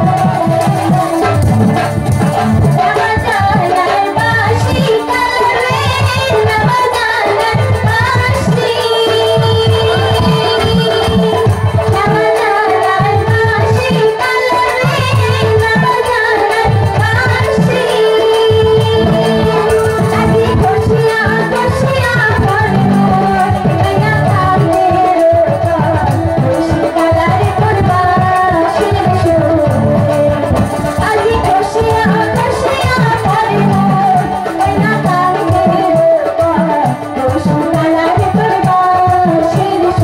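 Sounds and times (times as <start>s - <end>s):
instrumental accompaniment: 0.0s - 40.0s
steady drum beat: 0.0s - 40.0s
woman singing into microphone: 0.0s - 40.0s.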